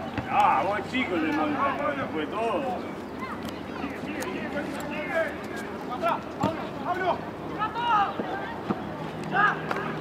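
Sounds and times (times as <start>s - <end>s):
open-air background noise: 0.0s - 10.0s
people shouting and calling: 3.2s - 8.6s, 9.2s - 10.0s.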